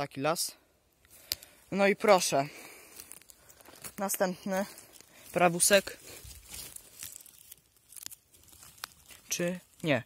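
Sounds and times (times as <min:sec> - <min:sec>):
crackling and rustling of pine needles: 0:00.9 - 0:10.0.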